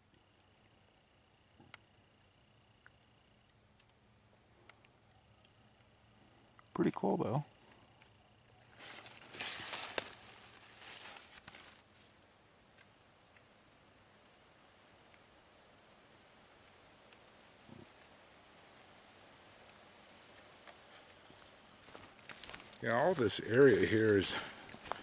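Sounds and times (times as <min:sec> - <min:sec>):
faint woodland hiss: 0:00.0 - 0:25.0
twigs and dry leaves rustling: 0:07.6 - 0:12.2, 0:19.6 - 0:25.0.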